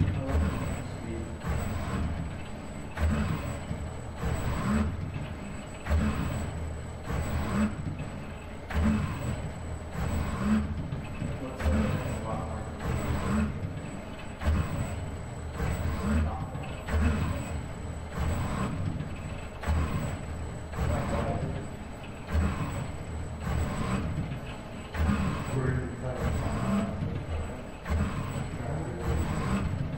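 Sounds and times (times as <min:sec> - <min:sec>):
robot arm motors whirring: 0:00.0 - 0:29.9.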